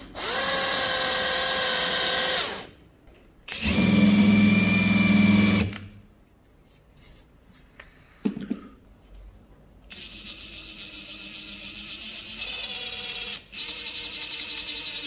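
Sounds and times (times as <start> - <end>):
power drill boring into wood: 0.0 - 2.7, 3.5 - 5.7.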